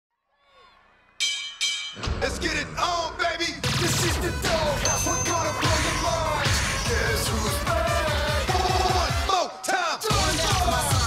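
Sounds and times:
ringing bell-like hits: 1.2s - 2.4s, 4.8s - 6.2s.

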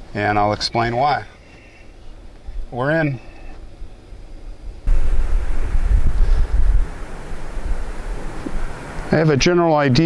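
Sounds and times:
wind buffeting microphone: 3.7s - 10.0s.

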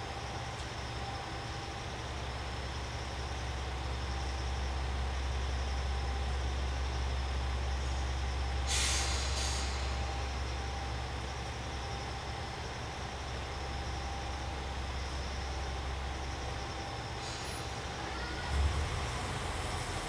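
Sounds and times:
diesel railcar engine idling: 0.0s - 20.0s
compressed air hissing: 8.7s - 10.0s.

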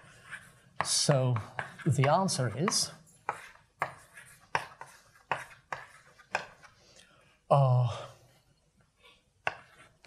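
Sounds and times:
chalk tapping on blackboard: 0.0s - 6.8s, 9.4s - 9.9s.

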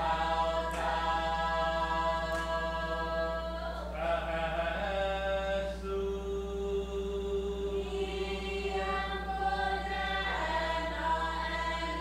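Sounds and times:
group chanting in unison: 0.0s - 12.0s.

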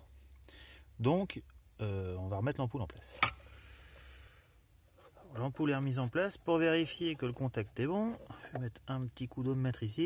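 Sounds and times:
faint handling noise: 4.8s - 9.9s.

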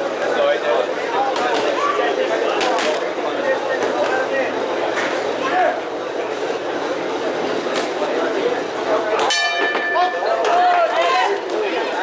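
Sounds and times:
boxing ring bell: 9.3s - 10.3s.

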